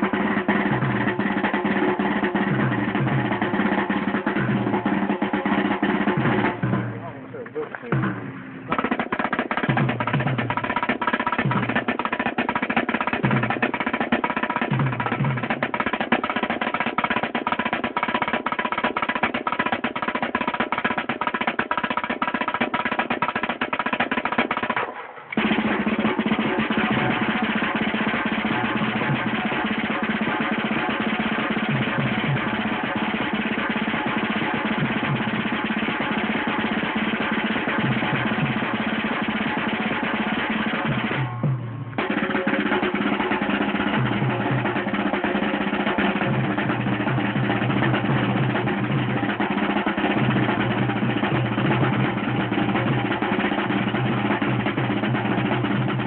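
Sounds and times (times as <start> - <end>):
snare drum rolls: 0.0 - 56.0.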